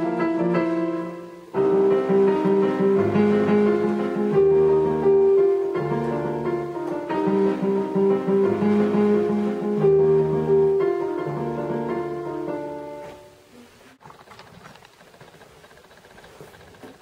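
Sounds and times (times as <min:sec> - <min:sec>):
electronic keyboard piano chords: 0:00.0 - 0:13.5.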